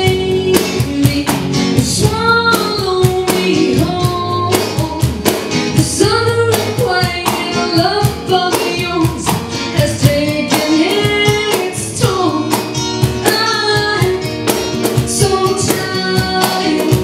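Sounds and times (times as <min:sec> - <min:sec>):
bass: 0:00.0 - 0:17.0
drums with steady beat: 0:00.0 - 0:17.0
electric guitar: 0:00.0 - 0:17.0
woman singing: 0:00.0 - 0:17.0.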